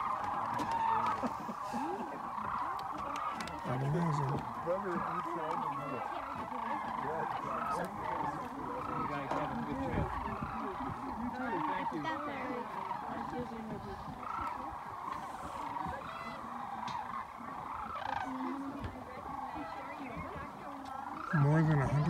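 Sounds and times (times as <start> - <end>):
flock of cranes calling: 0.0 - 22.0.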